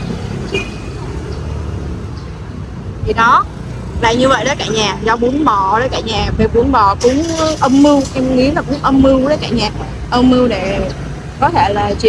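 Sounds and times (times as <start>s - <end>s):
motor scooters passing: 0.0s - 12.0s.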